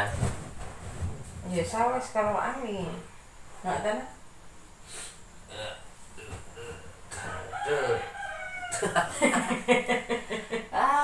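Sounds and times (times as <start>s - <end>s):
rooster crowing: 7.1s - 9.2s.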